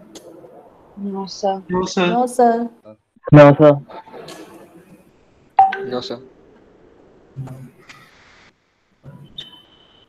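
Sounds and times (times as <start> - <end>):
person speaking over video call: 1.3 - 2.6, 5.6 - 6.2.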